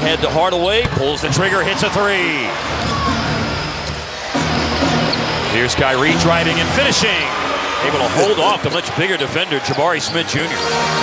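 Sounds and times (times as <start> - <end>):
crowd noise: 0.0 - 11.0
music over public address: 0.0 - 11.0.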